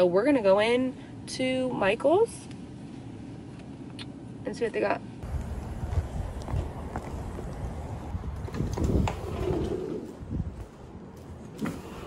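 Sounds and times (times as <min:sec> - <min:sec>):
low rumbling handling noise: 0:05.2 - 0:12.0.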